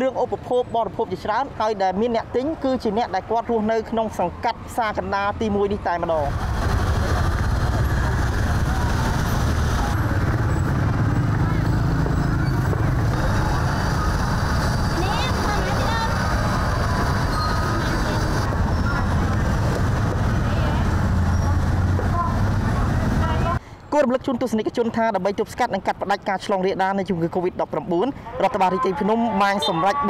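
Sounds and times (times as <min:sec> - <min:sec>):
motorbike engines passing: 0:03.5 - 0:23.6
people talking: 0:13.1 - 0:19.7, 0:20.4 - 0:30.0.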